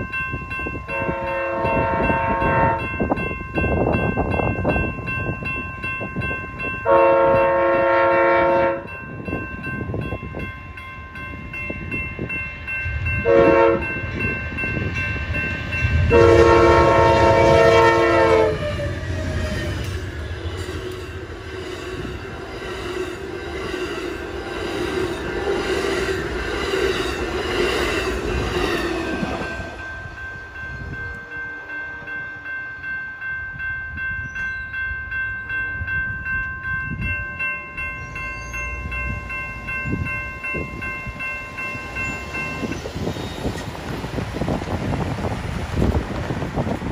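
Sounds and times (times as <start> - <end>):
crossing warning bell ringing: 0.0 - 46.9
train horn blasts: 0.9 - 3.0, 6.8 - 9.0, 13.2 - 14.2, 15.9 - 20.7.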